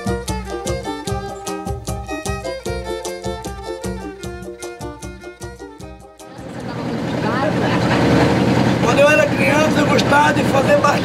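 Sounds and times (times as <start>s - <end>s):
boat engine running: 6.2s - 11.0s.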